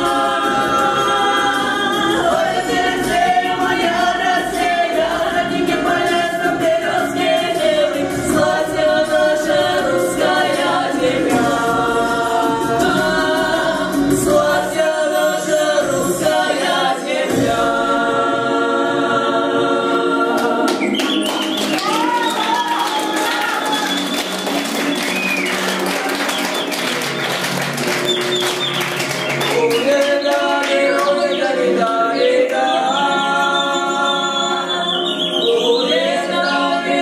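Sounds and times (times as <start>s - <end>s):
folk vocal ensemble singing: 0.0s - 25.8s, 28.3s - 37.0s.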